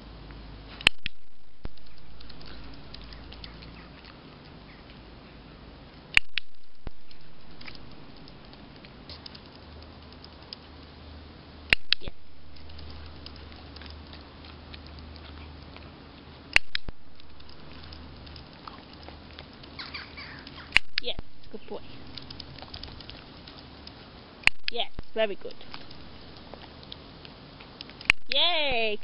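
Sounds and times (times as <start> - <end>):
faint patter and ticks: 0.0 - 29.0
training clicker clicking: 6.1 - 8.6, 11.7 - 15.2, 16.5 - 21.2.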